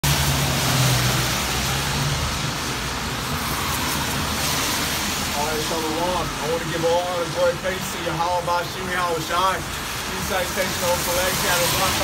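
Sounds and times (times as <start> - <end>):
tyres hissing on wet road: 0.0 - 12.0.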